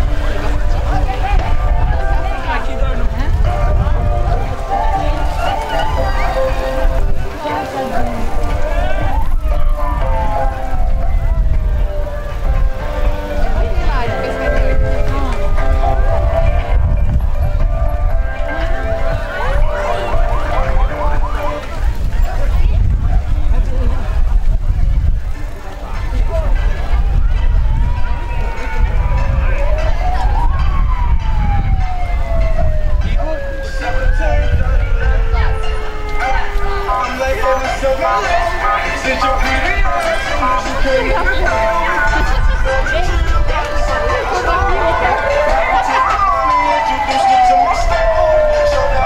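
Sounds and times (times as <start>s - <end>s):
background music: 0.0s - 24.2s, 25.2s - 49.0s
crowd and street noise: 0.0s - 49.0s
low wind rumble: 0.0s - 49.0s
siren with falling pitch: 3.4s - 21.8s, 26.7s - 37.7s, 40.4s - 49.0s.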